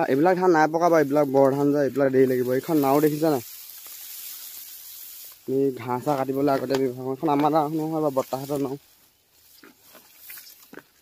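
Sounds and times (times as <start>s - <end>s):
soft even hiss: 0.0s - 10.7s.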